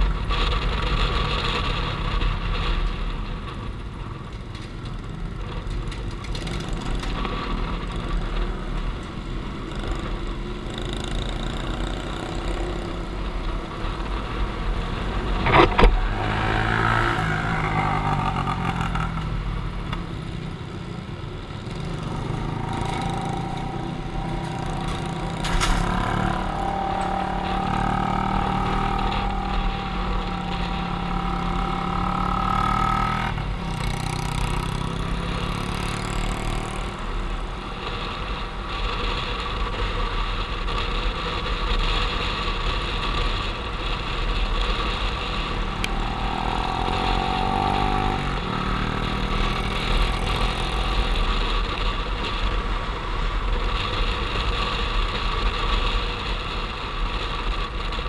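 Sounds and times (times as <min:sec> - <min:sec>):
motorcycle engine running: 0:00.0 - 0:58.0
steady rushing noise: 0:00.0 - 0:58.0.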